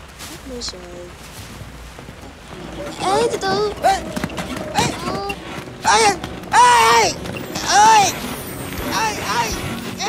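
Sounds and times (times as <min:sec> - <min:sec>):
footsteps on dirt track: 0:00.0 - 0:10.0
voices calling out: 0:02.2 - 0:10.0
loud shout: 0:05.8 - 0:08.2.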